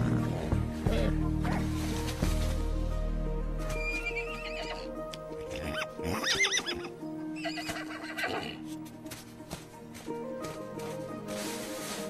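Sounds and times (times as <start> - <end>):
soft orchestral music: 0.0 - 12.0
horses whinnying: 3.8 - 4.9, 5.5 - 8.6.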